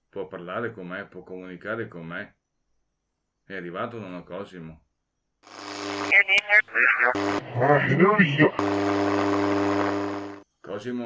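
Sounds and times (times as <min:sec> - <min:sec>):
buzzing hum with hiss: 0:05.4 - 0:10.4
garbled voice from radio: 0:06.1 - 0:09.4.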